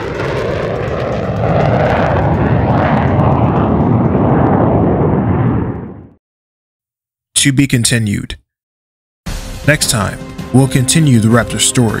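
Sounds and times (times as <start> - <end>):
jet flyby: 0.0 - 6.2.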